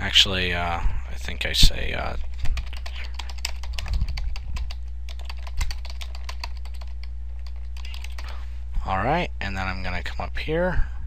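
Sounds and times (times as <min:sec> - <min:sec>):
steady low hum: 0:00.0 - 0:11.0
fast keyboard typing: 0:02.1 - 0:08.3.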